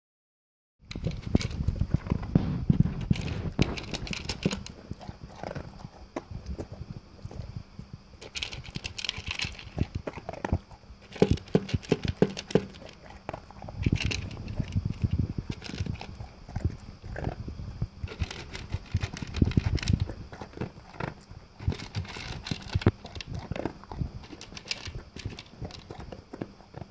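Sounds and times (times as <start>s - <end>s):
dog crunching dry kibble: 0.9s - 7.5s, 8.2s - 26.9s.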